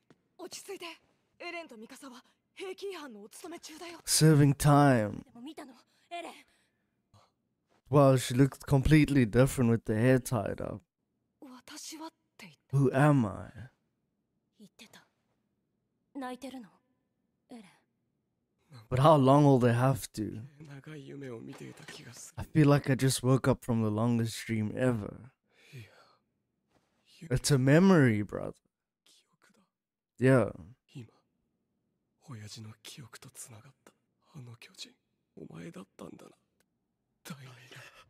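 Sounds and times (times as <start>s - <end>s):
faint dialogue: 0.4s - 13.9s, 18.6s - 26.3s, 27.1s - 29.2s, 30.2s - 31.2s
man speaking: 4.1s - 5.2s, 7.9s - 10.8s, 12.8s - 13.7s, 18.8s - 25.3s, 27.3s - 28.5s, 30.2s - 31.1s.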